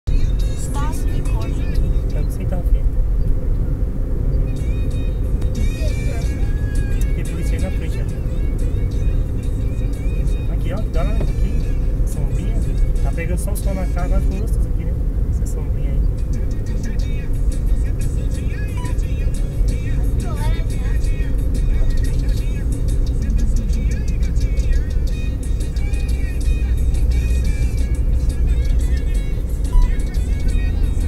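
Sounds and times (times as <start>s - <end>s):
car road and engine noise: 0.0s - 31.0s.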